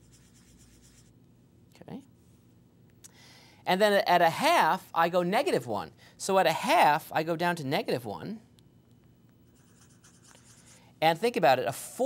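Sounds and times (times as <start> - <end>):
marker scratching on whiteboard: 0.0 - 1.1, 9.4 - 10.8.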